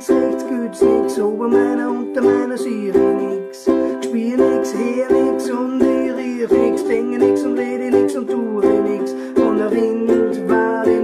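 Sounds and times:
ukulele strumming reggae rhythm: 0.0 - 11.0.

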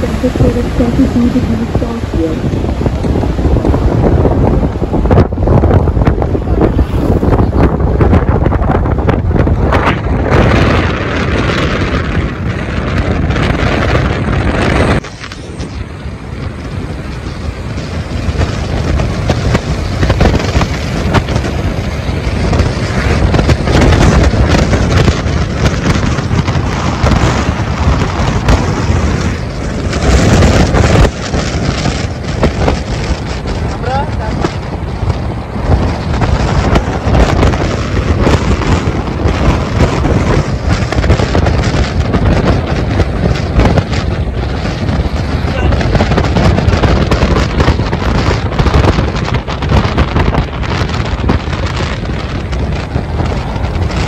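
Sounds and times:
indistinct voices: 0.0 - 2.5
loud low rumble: 0.0 - 54.0.

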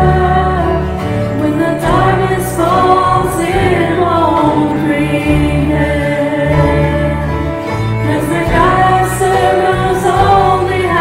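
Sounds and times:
band accompaniment: 0.0 - 11.0
low bass notes: 0.0 - 11.0
men and women singing: 0.0 - 11.0.

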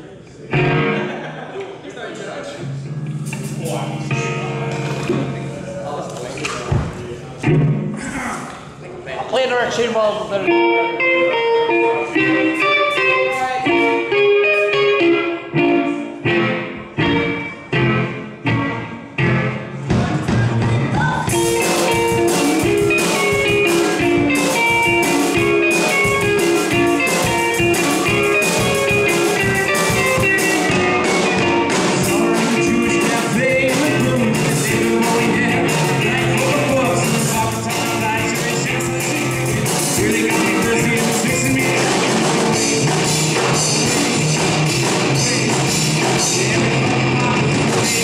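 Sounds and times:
electric guitar riff and chords: 0.5 - 1.5, 2.6 - 6.2, 6.8 - 8.0, 10.3 - 48.0
drum kit with cymbals: 3.1 - 5.5, 19.9 - 48.0.

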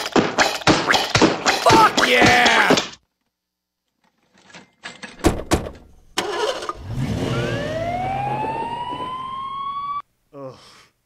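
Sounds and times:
ambulance doors slamming: 5.2 - 5.9
engine starting: 6.2 - 7.7
siren rising wail: 6.9 - 10.0.

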